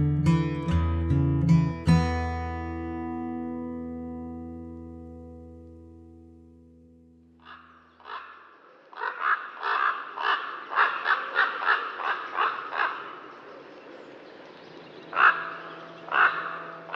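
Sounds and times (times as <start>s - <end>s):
crow cawing: 7.4s - 13.4s, 15.1s - 16.9s.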